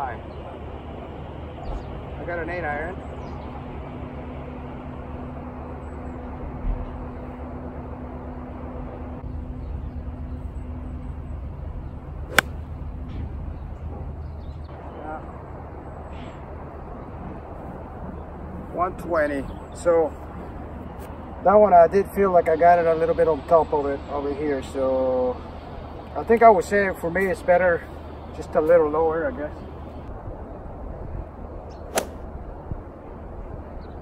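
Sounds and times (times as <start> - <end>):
low background hum: 0.0 - 34.0
golf club striking ball: 12.3 - 12.7, 31.9 - 32.2.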